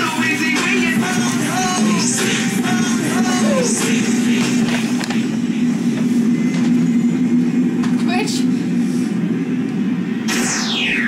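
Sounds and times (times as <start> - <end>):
loud low hum: 0.0 - 11.0.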